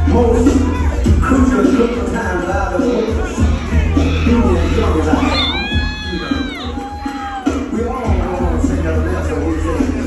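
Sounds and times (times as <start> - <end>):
dance music with bass line: 0.0 - 10.0.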